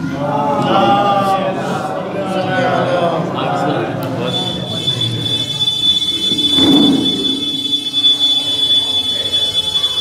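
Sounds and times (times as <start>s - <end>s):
microphone feedback squeal: 4.2s - 10.0s.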